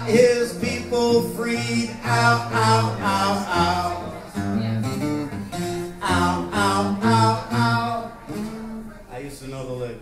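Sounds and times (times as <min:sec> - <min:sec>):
acoustic guitar strumming chords: 0:00.0 - 0:09.2.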